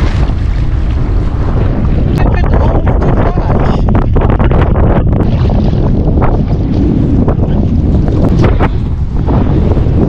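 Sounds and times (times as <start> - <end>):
jet ski running: 0.0 - 10.0
water rushing along hull: 0.0 - 10.0
wind buffeting microphone: 0.0 - 10.0.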